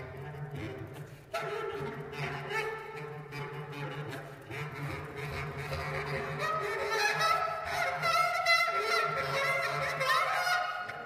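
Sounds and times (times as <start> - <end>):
bass clarinet: 1.4 - 11.0.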